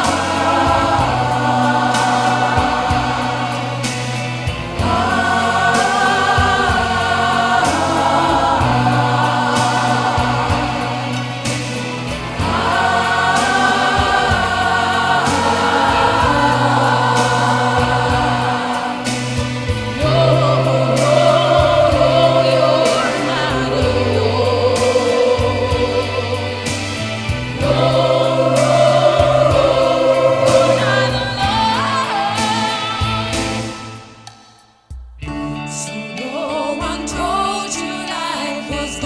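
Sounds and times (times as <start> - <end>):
choir singing in harmony: 0.0 - 34.7, 35.7 - 39.0.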